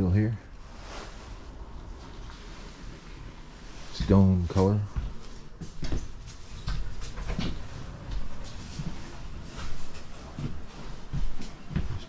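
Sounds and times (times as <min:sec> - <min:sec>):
faint low rumble: 0:00.0 - 0:05.6.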